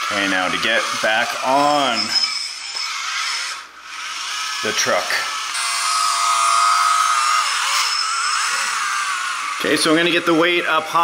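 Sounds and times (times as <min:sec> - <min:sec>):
electric motors whining: 0:00.0 - 0:11.0.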